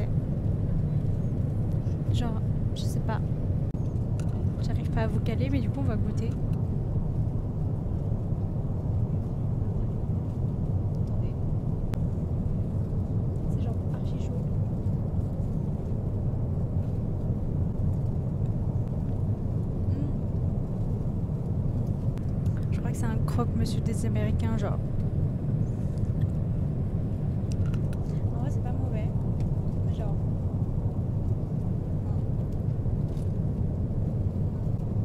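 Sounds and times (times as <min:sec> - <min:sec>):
airliner cabin drone: 0:00.0 - 0:35.0.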